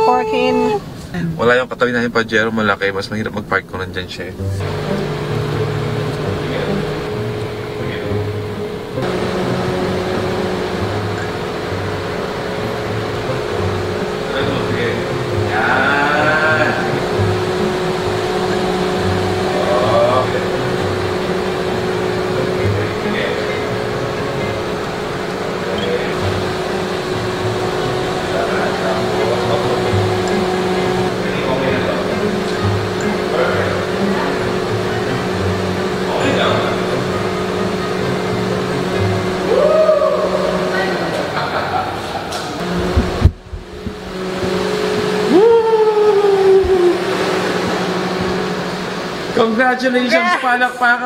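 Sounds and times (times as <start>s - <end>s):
car engine humming: 0.0s - 51.0s.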